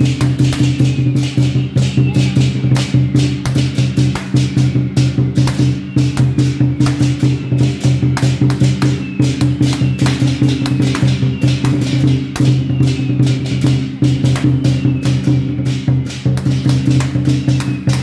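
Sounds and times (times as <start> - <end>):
sharp percussion strikes: 0.0 - 18.0.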